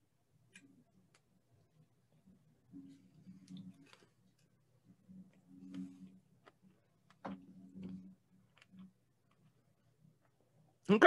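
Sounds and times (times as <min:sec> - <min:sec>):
low hum: 0:00.0 - 0:10.8.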